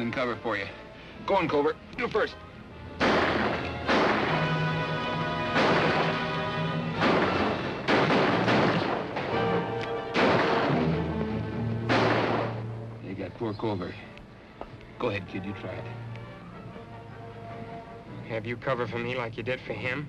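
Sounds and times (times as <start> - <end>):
dramatic orchestral music: 0.0 - 13.2, 15.2 - 19.8
gunshots: 3.0 - 11.0, 11.8 - 12.8.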